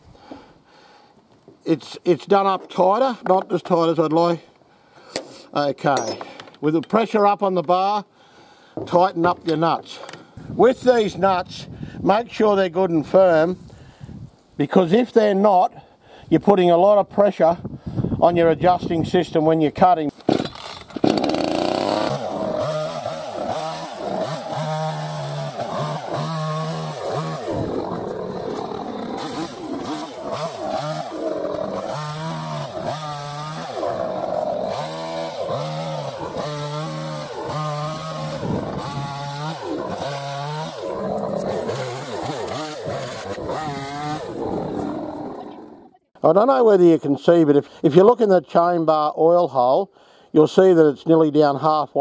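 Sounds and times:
chainsaw cutting branches: 0:20.2 - 0:46.0
chainsaw revving and idling: 0:20.5 - 0:46.1.

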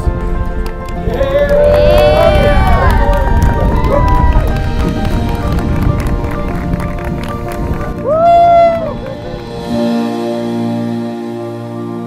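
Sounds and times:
wind rumble on microphone: 0:00.0 - 0:09.9
background music: 0:00.0 - 0:12.0
guests cheering and clapping: 0:00.6 - 0:09.6
whoops: 0:01.0 - 0:04.7, 0:08.0 - 0:09.1.

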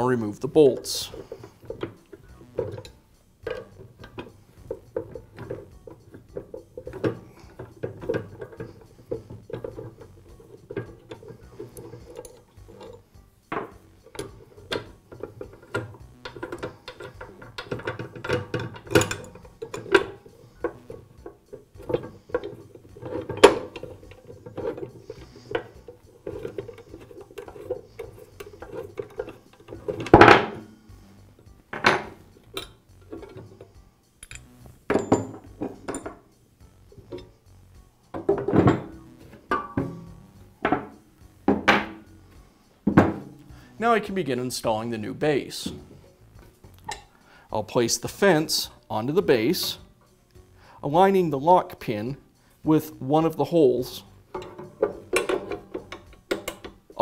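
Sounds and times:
allen wrench clicking on bolts: 0:01.6 - 0:30.6, 0:31.8 - 0:36.2, 0:53.3 - 0:57.0
knocks and clunks on workbench: 0:13.5 - 0:13.8, 0:31.7 - 0:32.2, 0:38.2 - 0:42.0, 0:42.9 - 0:43.4.

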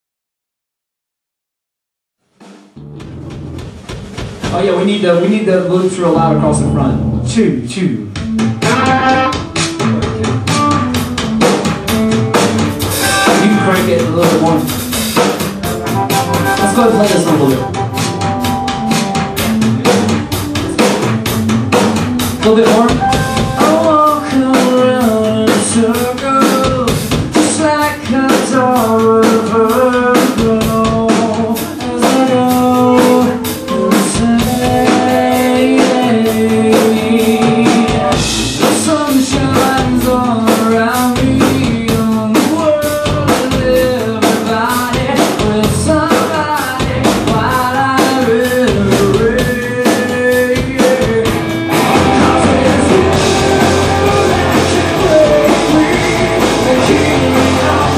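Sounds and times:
drum kit beat: 0:02.2 - 0:57.9
bass guitar: 0:02.7 - 0:05.2, 0:05.8 - 0:57.9
electric guitars: 0:06.2 - 0:07.6, 0:08.2 - 0:57.9.

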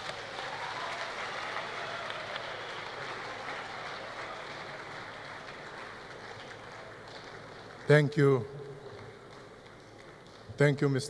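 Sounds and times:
large audience applauding: 0:00.0 - 0:10.6.

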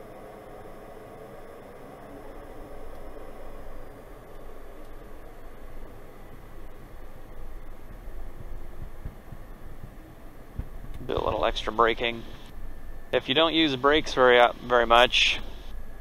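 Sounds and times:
aircraft cockpit hiss and rumble: 0:00.0 - 0:16.0
low thumps: 0:07.8 - 0:12.5.

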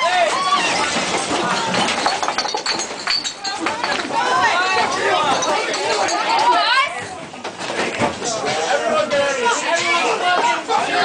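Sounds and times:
voices: 0:03.1 - 0:11.0.

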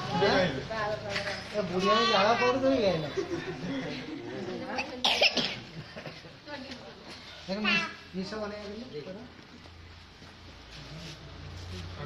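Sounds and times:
person coughing: 0:05.0 - 0:05.6.

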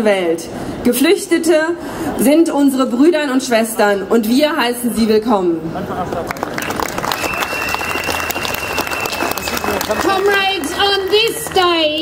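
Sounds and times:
crowd applauding: 0:06.0 - 0:12.0.

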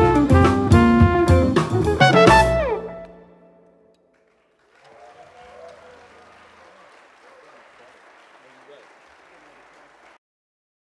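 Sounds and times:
audience applauding: 0:04.0 - 0:10.2
voices calling out from crowd: 0:04.7 - 0:10.2.

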